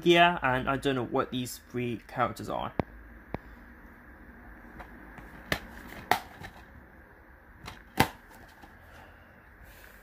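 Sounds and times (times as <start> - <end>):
plastic case clicking: 4.8 - 6.7, 7.6 - 8.8.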